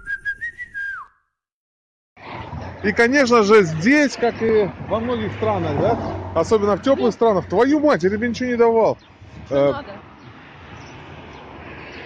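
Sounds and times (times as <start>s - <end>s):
whistle-like note: 0.0s - 1.3s.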